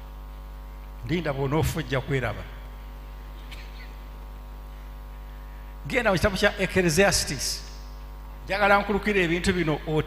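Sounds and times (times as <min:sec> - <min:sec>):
electrical mains hum: 0:00.0 - 0:10.0
man speaking: 0:01.0 - 0:02.7, 0:05.9 - 0:07.7, 0:08.5 - 0:10.0.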